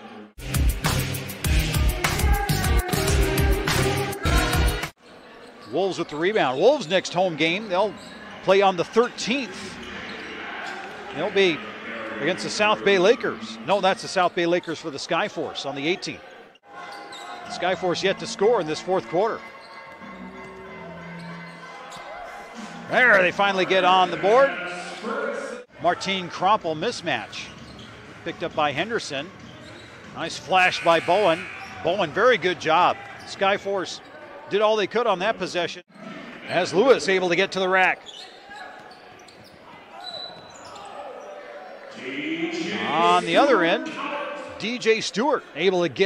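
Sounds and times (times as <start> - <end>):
arena background noise: 5.0 - 46.0
shoe squeak: 6.8 - 8.4, 16.8 - 17.6, 18.9 - 22.8, 27.3 - 28.1, 29.4 - 32.0, 37.8 - 41.6.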